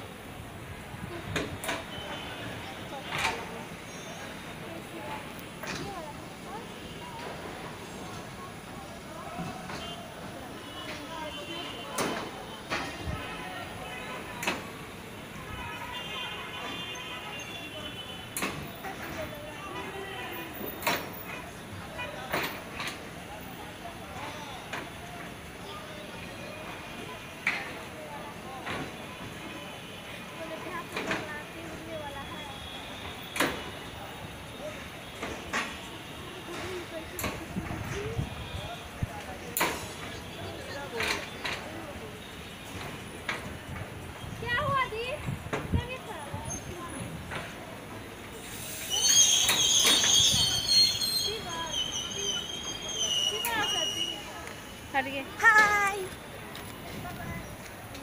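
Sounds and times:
train coaches rumbling past: 0.0s - 15.6s, 18.2s - 58.0s
faint voices: 0.0s - 58.0s
sharp clacks of train wheels: 11.9s - 13.0s, 14.1s - 14.8s, 18.3s - 19.3s, 20.6s - 21.4s, 28.6s - 29.4s, 33.0s - 33.8s, 35.2s - 38.1s, 39.5s - 40.3s, 42.6s - 44.0s, 46.6s - 56.9s
indistinct background voices: 30.3s - 58.0s.

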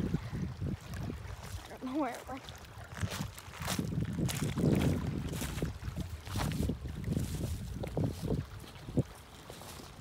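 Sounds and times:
small waves lapping on pebbles: 0.0s - 10.0s
wind on microphone: 0.0s - 10.0s.

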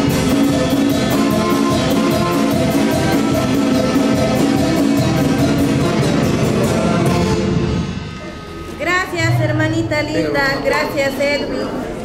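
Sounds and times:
live band fanfare: 0.0s - 8.8s
woman speaking over microphone: 8.7s - 12.0s.

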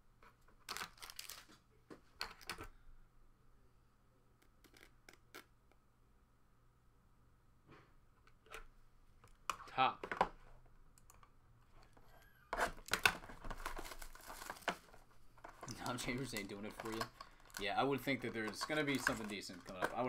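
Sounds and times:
cardboard and wrapping tearing: 13.5s - 14.8s.

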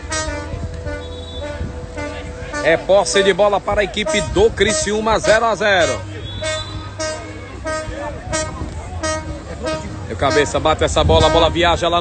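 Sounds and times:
faint crowd voices: 0.0s - 12.0s.

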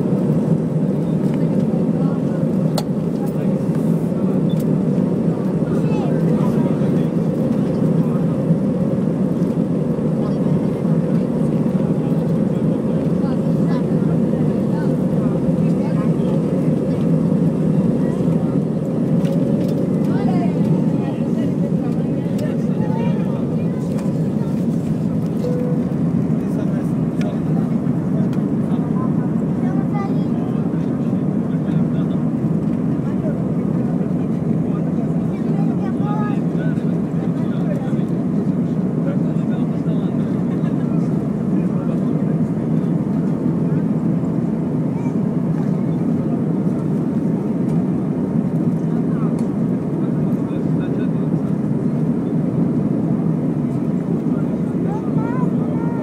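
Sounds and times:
jet cabin engine drone: 0.0s - 56.0s.

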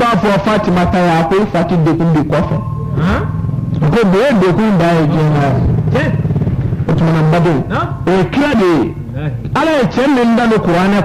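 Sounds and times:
man preaching: 0.0s - 6.2s, 6.9s - 11.0s
steady low hum: 0.1s - 11.0s.

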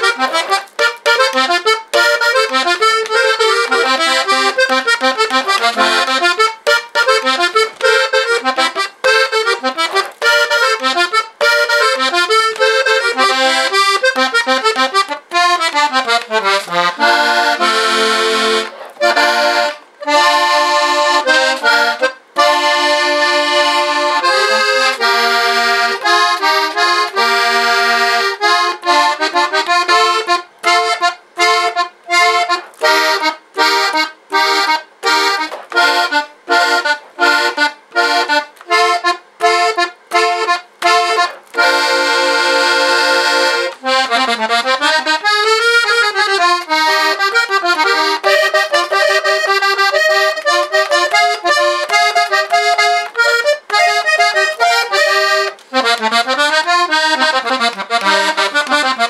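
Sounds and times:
button accordion playing: 0.0s - 59.0s.

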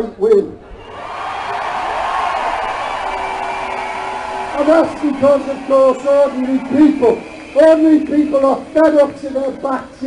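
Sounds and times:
crowd applauding and cheering: 0.8s - 10.0s.

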